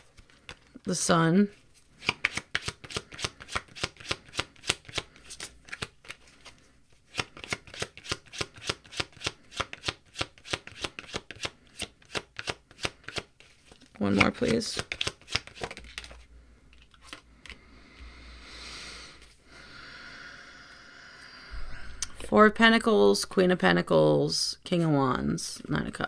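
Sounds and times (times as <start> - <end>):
cards being shuffled: 0.0 - 0.8, 1.5 - 17.6.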